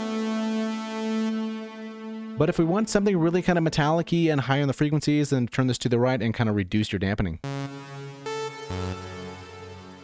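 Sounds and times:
held synthesizer note with reverb: 0.0s - 3.2s, 7.4s - 10.0s.

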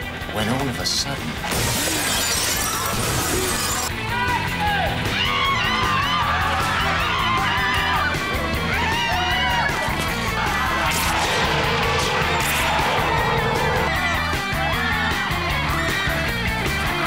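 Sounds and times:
glass window shattering: 1.5s - 3.9s
music with fast beat: 10.7s - 15.1s.

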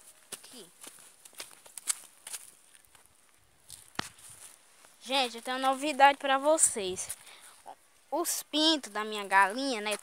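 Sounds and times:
footsteps on dirt ground: 0.0s - 7.8s, 9.2s - 10.0s.

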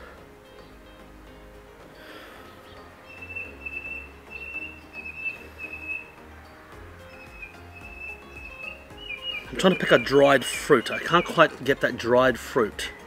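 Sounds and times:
soft background music: 0.0s - 13.0s
bird whistling high notes: 3.1s - 6.1s, 7.1s - 11.4s.

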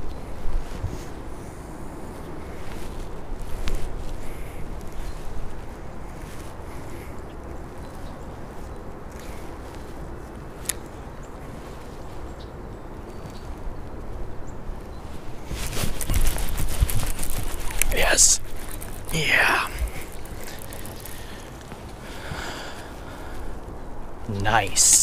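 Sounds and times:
clothing rubbing on microphone: 0.2s - 10.7s, 14.8s - 23.5s
wind on microphone: 13.7s - 24.7s
fishing reel and rod handling: 15.7s - 19.2s, 19.8s - 21.7s.

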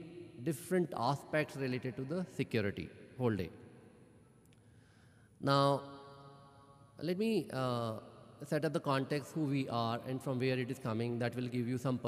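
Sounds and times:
man speaking: 0.0s - 3.5s, 5.4s - 5.8s, 7.0s - 12.0s.

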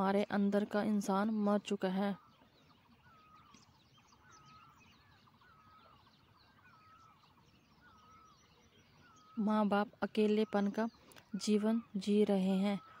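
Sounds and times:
high bird chirps: 0.0s - 13.0s
warbling bird call: 1.8s - 13.0s.

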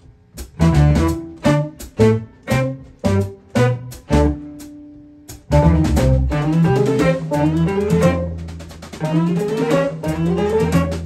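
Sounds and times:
live band playing instrumental tune: 0.4s - 11.0s.

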